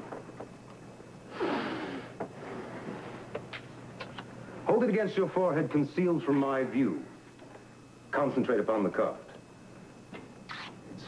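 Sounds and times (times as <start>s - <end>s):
breathy exhale: 1.3s - 2.2s.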